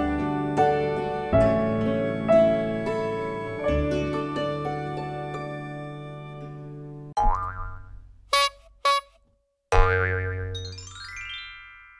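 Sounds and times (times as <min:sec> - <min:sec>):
springy cartoon boing: 0:07.2 - 0:10.8
short pitched toots: 0:08.3 - 0:09.3.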